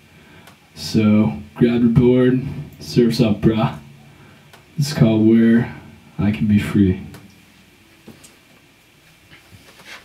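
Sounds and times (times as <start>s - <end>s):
light rustles: 9.3s - 10.0s.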